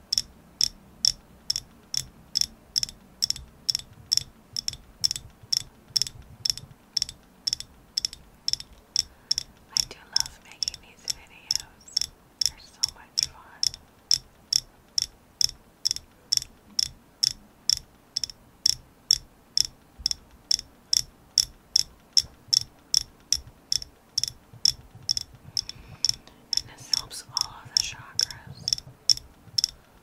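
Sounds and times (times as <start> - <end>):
fingernails tapping on object: 0.0 - 12.6, 13.3 - 29.8.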